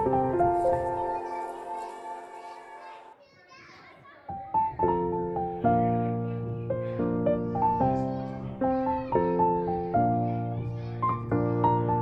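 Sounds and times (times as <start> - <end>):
background music with held notes: 0.0 - 3.1
children's voices and chatter: 0.0 - 12.0.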